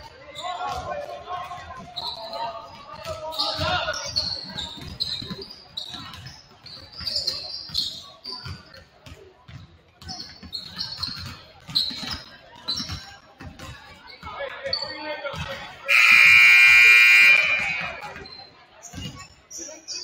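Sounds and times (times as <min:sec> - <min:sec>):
sneaker squeaks: 0:00.1 - 0:20.0
basketballs bouncing on hardwood floor: 0:04.1 - 0:14.0
scoreboard horn: 0:15.9 - 0:18.0.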